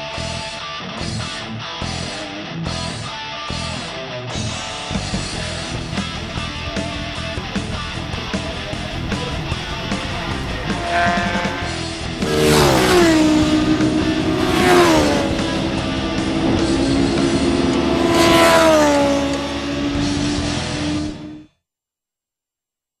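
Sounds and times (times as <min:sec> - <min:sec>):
guitar music: 0:00.6 - 0:21.4
racing motorcycles passing: 0:05.2 - 0:21.4.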